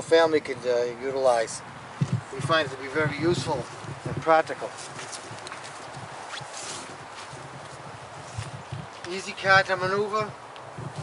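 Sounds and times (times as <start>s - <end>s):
footsteps on grass and leaves: 2.2s - 9.7s.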